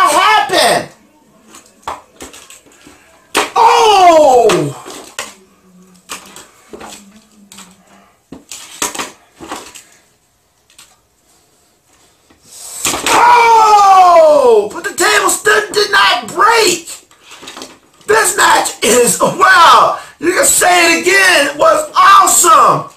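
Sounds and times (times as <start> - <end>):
person crying out falling pitch: 3.6 - 4.8, 13.0 - 14.6.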